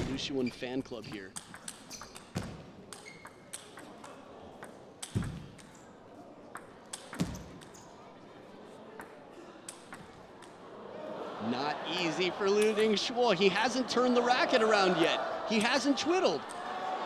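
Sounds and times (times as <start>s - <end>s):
table tennis ball clicking: 1.2s - 5.8s.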